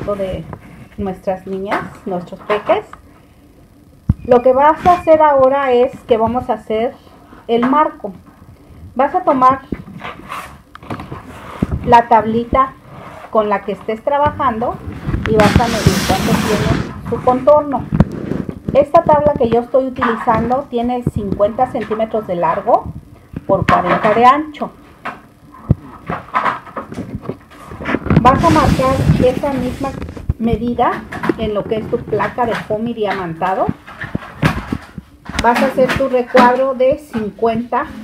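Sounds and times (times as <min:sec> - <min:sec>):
person speaking: 0:00.0 - 0:03.0, 0:11.8 - 0:24.8, 0:27.8 - 0:33.8
foam sheet rustling and scraping: 0:09.8 - 0:13.7, 0:14.8 - 0:18.9, 0:25.9 - 0:30.4.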